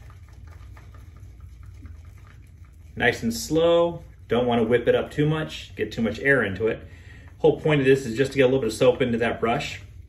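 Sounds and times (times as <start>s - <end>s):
shaving brush swishing on soap: 0.0s - 10.0s.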